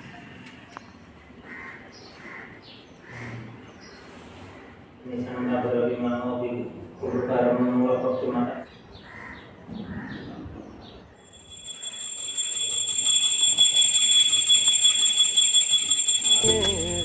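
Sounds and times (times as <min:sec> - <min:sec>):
bell rung rapidly: 0:11.3 - 0:17.0
song: 0:16.4 - 0:17.0.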